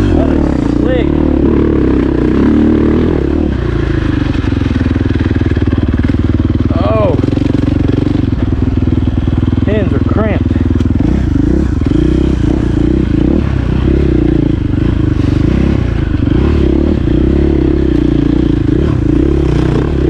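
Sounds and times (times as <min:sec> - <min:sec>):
dirt bike engine revving: 0:00.0 - 0:20.0.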